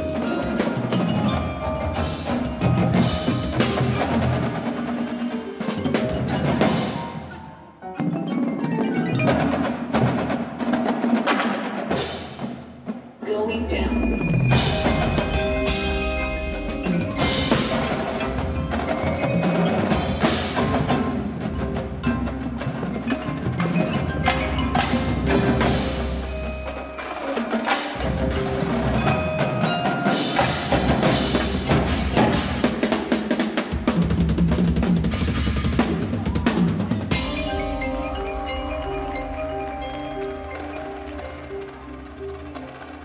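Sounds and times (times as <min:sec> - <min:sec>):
marching drums striking: 0:00.0 - 0:07.4, 0:08.1 - 0:13.2, 0:14.0 - 0:43.0
marimbas and mallet keyboards: 0:00.0 - 0:10.6, 0:13.6 - 0:43.0.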